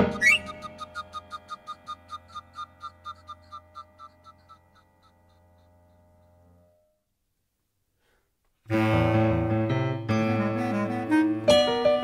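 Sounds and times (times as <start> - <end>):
toy whistles tooting: 0.0 - 5.4.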